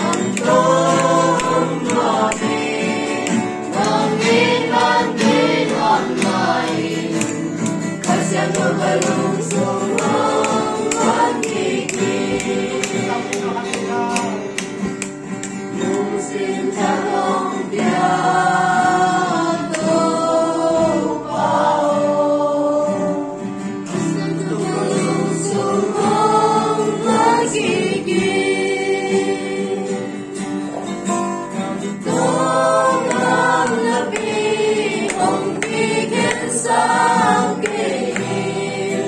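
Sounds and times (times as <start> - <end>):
acoustic guitar: 0.0 - 39.0
group singing worship song: 0.0 - 39.0.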